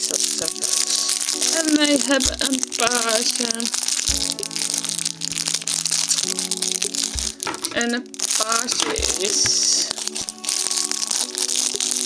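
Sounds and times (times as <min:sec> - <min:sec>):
background music with low held notes: 0:00.0 - 0:12.0
plastic bag crinkling: 0:00.0 - 0:12.0.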